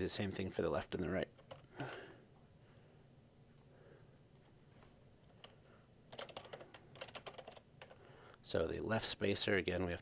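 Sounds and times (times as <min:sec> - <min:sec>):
computer keyboard typing: 0:01.3 - 0:01.7, 0:05.3 - 0:08.0.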